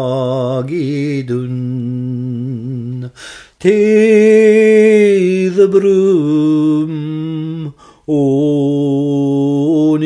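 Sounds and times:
breath: 3.1s - 3.6s, 7.8s - 8.1s.

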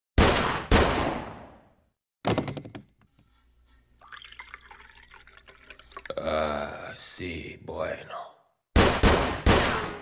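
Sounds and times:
gunshots with echoing tail: 0.2s - 1.7s, 8.8s - 10.0s.

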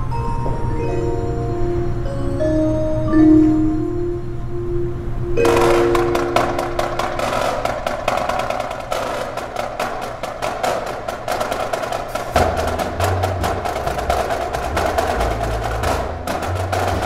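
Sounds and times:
air conditioning hum: 0.0s - 17.0s
marching snare drums rolling: 5.4s - 17.0s.

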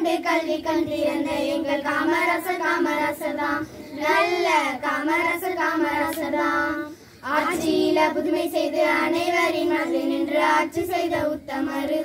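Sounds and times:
girls singing in unison: 0.0s - 12.0s.

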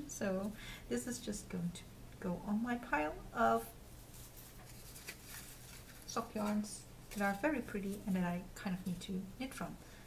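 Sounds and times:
low room hum: 0.0s - 10.0s
yarn rustling in hands: 3.4s - 8.2s.

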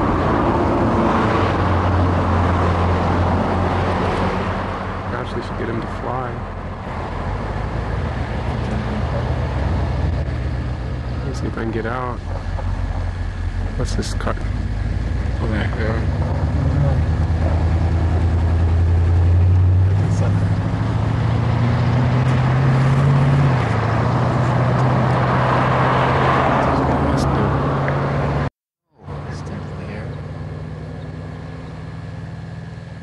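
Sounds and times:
vehicle engine humming: 0.0s - 33.0s.

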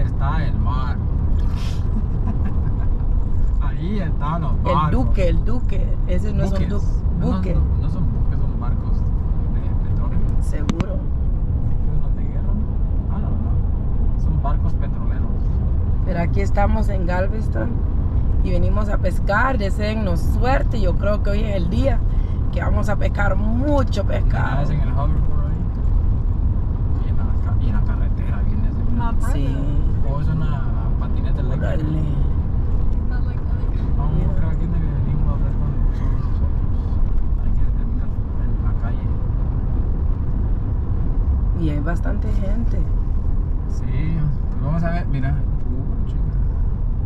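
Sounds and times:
car road and engine noise: 0.0s - 47.0s.

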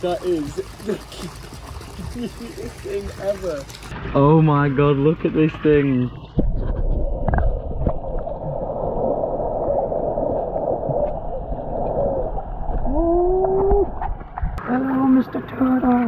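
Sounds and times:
bubbling: 0.0s - 5.1s, 5.9s - 14.9s
muffled underwater water noise: 0.0s - 16.0s.

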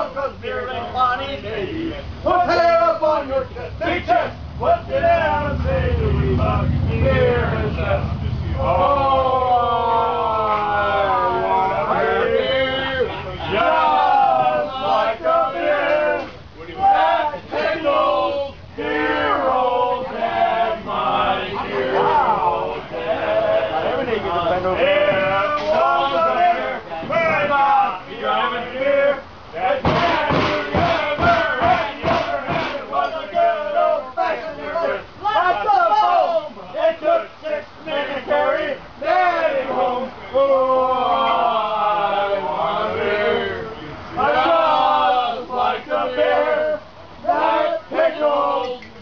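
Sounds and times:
bar crowd noise: 0.0s - 49.0s
men chanting and shouting a song: 0.0s - 49.0s
men singing a long note: 3.8s - 49.0s
loud rhythmic thumps: 29.8s - 33.0s.

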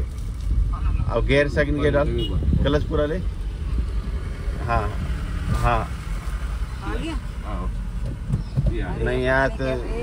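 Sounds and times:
engine and road rumble in car: 0.0s - 10.0s.

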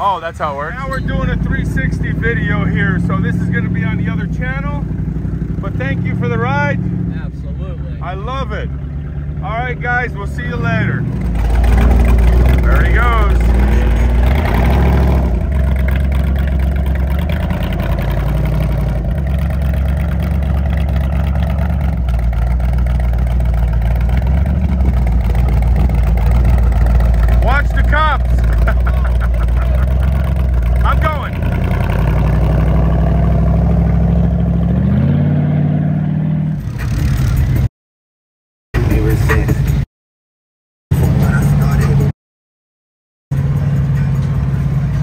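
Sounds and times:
engine running and revving: 0.5s - 37.7s, 40.9s - 42.1s, 43.3s - 45.0s
voices calling out: 5.6s - 16.5s, 27.0s - 31.5s.

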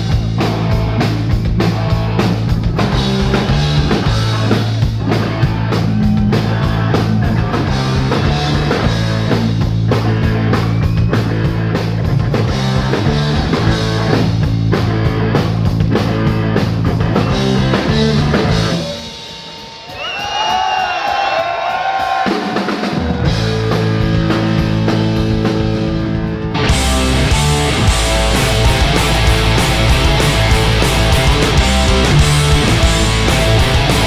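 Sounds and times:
rock band playing hard rock: 0.0s - 34.0s
wavering high guitar line: 3.1s - 9.3s, 23.5s - 34.0s.

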